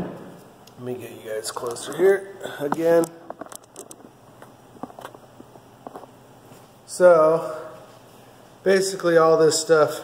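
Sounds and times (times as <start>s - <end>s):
soft footsteps: 2.7s - 6.9s.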